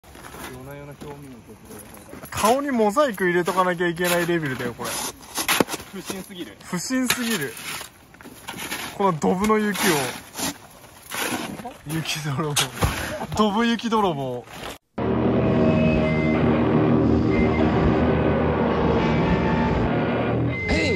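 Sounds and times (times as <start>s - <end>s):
shovel chopping and scraping icy snow: 4.0s - 13.4s.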